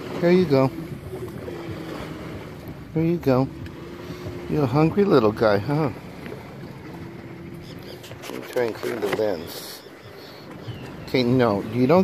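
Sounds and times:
distant motorboat engine droning: 0.0 - 12.0
wind and water rumble: 0.0 - 12.0.

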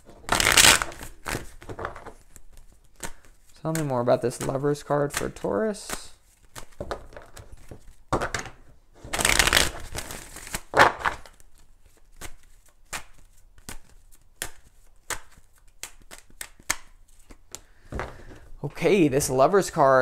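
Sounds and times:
cards being shuffled: 0.0 - 18.6.

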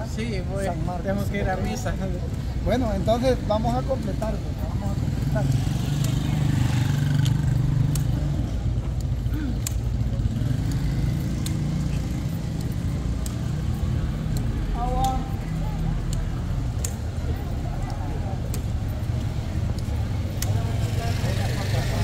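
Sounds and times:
street traffic rumble: 0.0 - 22.0
footsteps on stone paving: 0.6 - 22.0
crutch tips tapping: 7.2 - 17.2.

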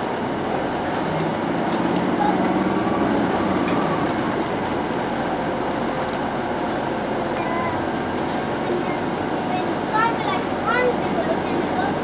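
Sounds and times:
streetcar wheels and motor rumble: 0.0 - 12.0
high wheel squeal: 2.2 - 7.4.

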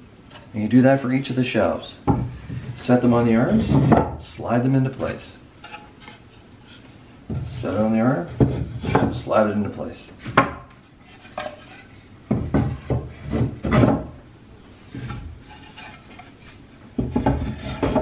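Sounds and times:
wood-on-wood knocks: 2.1 - 2.7, 10.3 - 10.7, 12.3 - 14.2, 17.0 - 18.0
wood scraping rubs: 2.3 - 4.2, 5.0 - 9.3, 10.2 - 14.2, 14.8 - 18.0.

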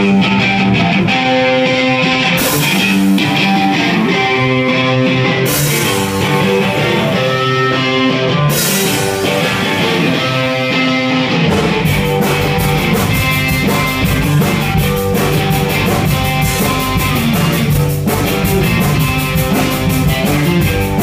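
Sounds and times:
electric guitar chords: 0.0 - 21.0
drum beat: 2.3 - 4.2, 5.5 - 7.4, 8.5 - 21.0.

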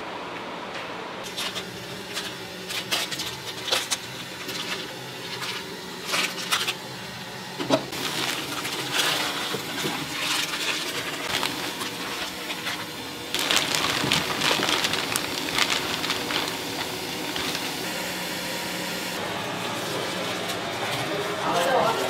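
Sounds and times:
plastic bag rustling: 7.9 - 18.3.

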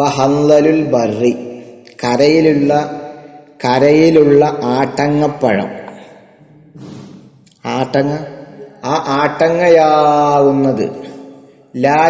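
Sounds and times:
man chanting melodic recitation: 0.0 - 12.0.

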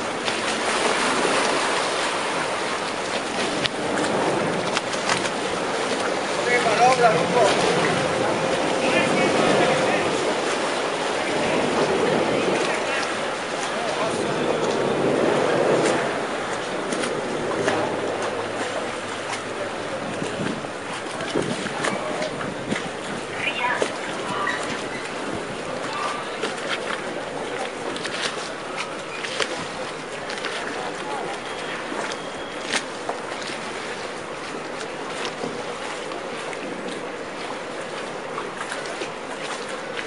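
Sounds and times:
boat engine rumbling: 0.0 - 40.0
water washing: 0.0 - 40.0
murmur of voices: 6.2 - 32.8.

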